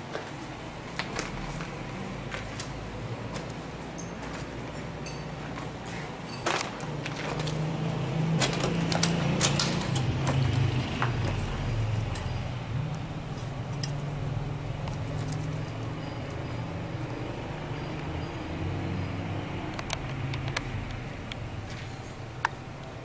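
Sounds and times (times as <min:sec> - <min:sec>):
sharp clicks and crunches: 0:08.3 - 0:11.5, 0:19.7 - 0:23.0.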